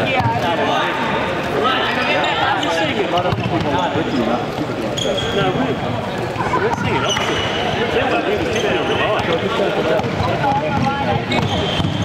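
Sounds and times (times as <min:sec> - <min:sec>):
sneakers squeaking on wooden floor: 0:04.9 - 0:05.8, 0:06.7 - 0:07.8, 0:08.4 - 0:09.4, 0:10.8 - 0:12.0.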